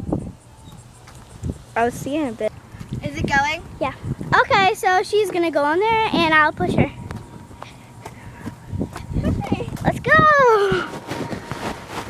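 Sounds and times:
child's high-pitched cry: 10.1 - 10.9.

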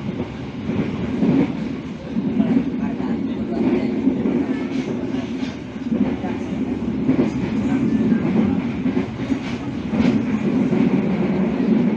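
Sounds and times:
train wheels rumbling on rails: 0.0 - 11.9.

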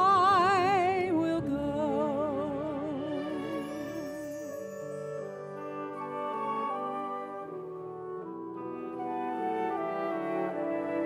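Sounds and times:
orchestral brass-like chords: 5.3 - 11.0.

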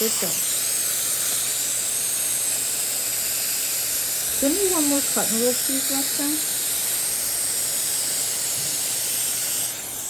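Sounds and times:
dental suction hiss: 0.0 - 10.0.

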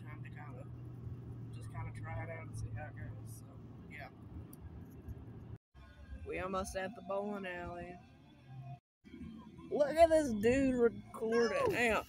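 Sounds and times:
car cabin road and engine rumble: 0.0 - 5.6, 8.6 - 12.0.

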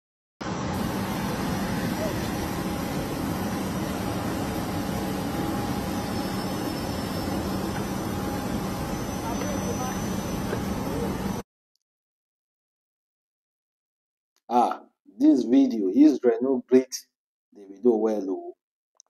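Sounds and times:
jet engines running: 0.4 - 11.4.

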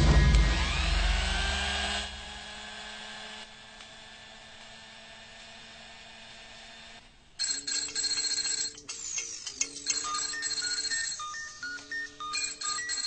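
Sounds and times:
mobile phone ringtone: 7.4 - 13.0.

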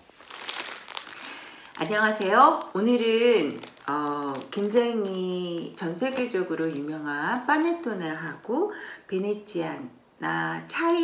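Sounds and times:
plastic bag crinkling: 0.0 - 8.0
woman speaking: 1.8 - 11.0.

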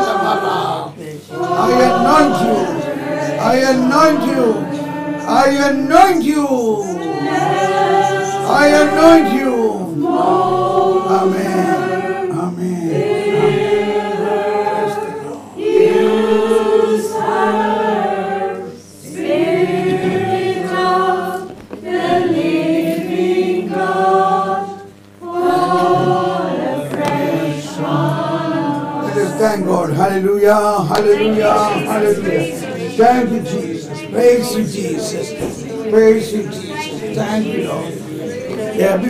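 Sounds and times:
group of voices singing: 0.0 - 39.0.

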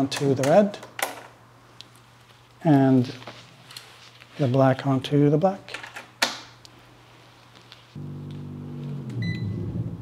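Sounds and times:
steady low hum: 8.0 - 10.0
short high electronic beep: 9.2 - 9.6.

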